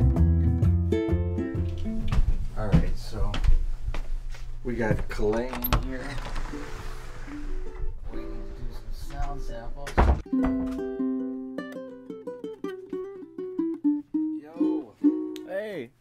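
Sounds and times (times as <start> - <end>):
ukulele strumming and plucking: 0.0 - 2.1, 10.2 - 15.6.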